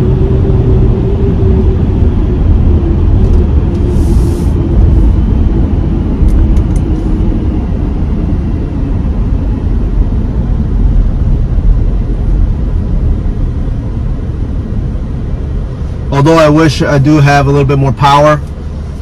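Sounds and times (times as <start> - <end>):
tyres and drivetrain rumble: 0.0 - 19.0.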